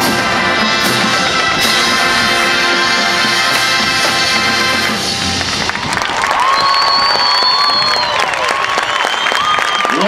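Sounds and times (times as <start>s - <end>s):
marching band chord: 0.0s - 5.9s
crowd applauding and cheering: 1.3s - 10.0s.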